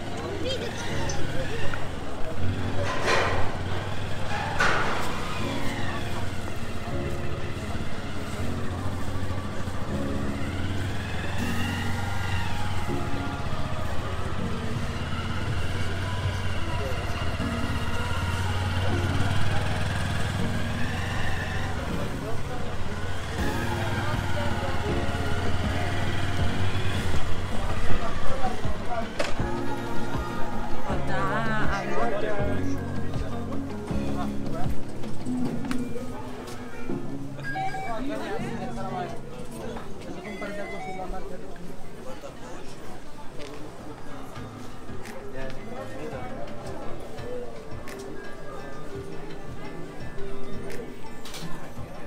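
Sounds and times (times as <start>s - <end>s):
passers-by talking: 0.0s - 52.0s
street traffic: 0.0s - 52.0s
motorcycle engine running: 0.3s - 31.0s.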